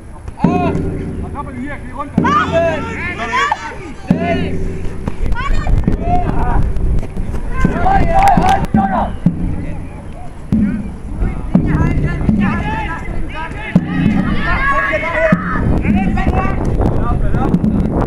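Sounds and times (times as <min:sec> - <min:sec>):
wind rumble on microphone: 0:00.0 - 0:18.0
people shouting and calling: 0:00.3 - 0:17.4
sharp knocks: 0:00.4 - 0:16.5.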